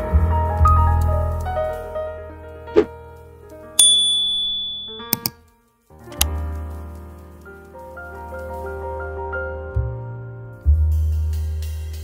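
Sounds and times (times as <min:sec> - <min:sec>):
soft piano music: 0:00.0 - 0:11.3
bright notification ding: 0:03.8 - 0:05.3
mouse clicks: 0:05.0 - 0:05.4.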